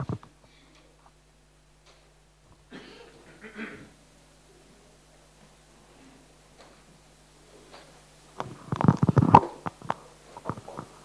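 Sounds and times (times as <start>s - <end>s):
microphone being handled: 7.7s - 11.0s.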